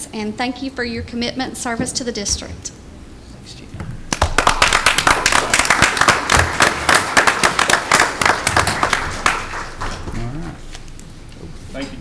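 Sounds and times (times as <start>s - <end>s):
audience applauding: 4.1s - 10.1s.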